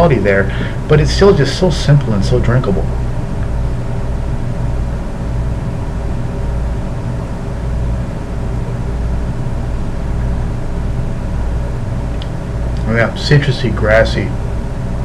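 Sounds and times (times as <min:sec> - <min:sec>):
air conditioner humming: 0:00.0 - 0:15.0.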